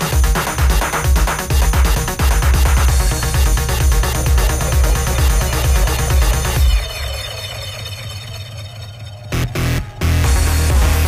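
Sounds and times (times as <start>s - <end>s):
sustained synth tones: 1.9s - 11.0s.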